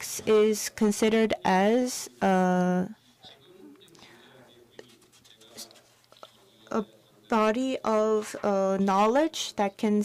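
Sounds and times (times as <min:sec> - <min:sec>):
faint background speech: 0:00.0 - 0:10.0.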